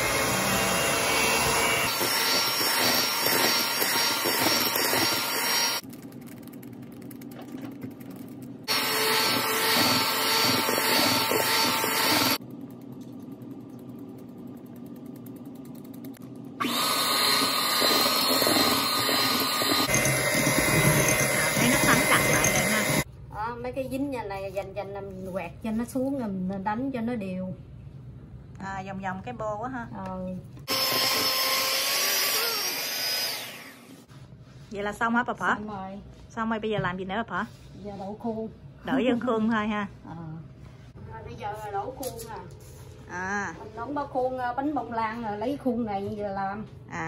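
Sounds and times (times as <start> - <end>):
electric hand mixer beating batter: 0.0 - 5.8, 8.7 - 12.4, 16.6 - 23.1, 30.7 - 34.0.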